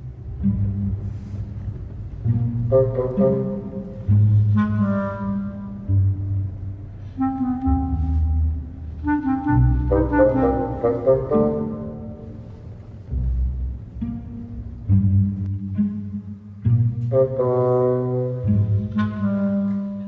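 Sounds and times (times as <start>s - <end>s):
instrumental film score music: 0.0s - 20.0s.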